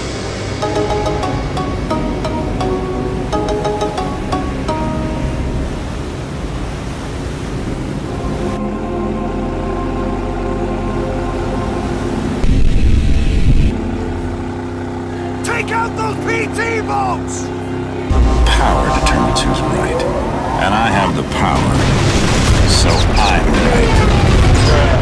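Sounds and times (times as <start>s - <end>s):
background music: 0.0s - 6.2s, 8.0s - 13.0s, 17.4s - 22.0s
low drone: 0.0s - 16.2s, 17.0s - 25.0s
sea waves: 0.0s - 25.0s
person speaking: 15.4s - 21.6s
low rumble: 17.6s - 25.0s.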